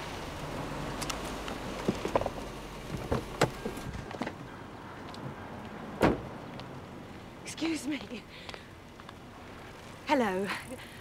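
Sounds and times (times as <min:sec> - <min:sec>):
car door shutting: 0:06.0 - 0:06.3.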